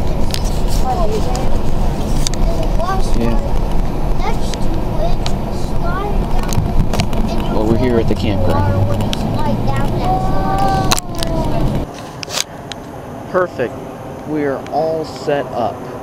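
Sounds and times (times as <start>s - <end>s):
faint voices: 0.0s - 12.4s
car road and engine rumble: 0.0s - 16.0s.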